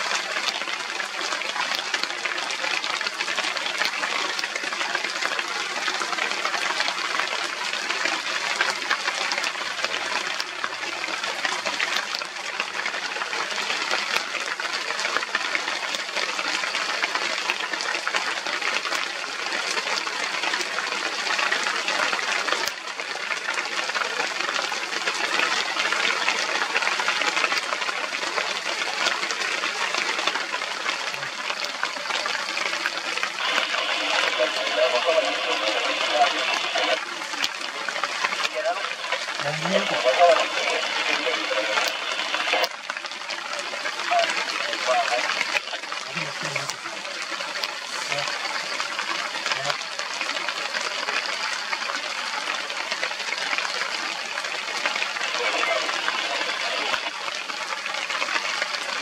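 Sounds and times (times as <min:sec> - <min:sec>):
steady rain falling: 0:00.0 - 0:59.0.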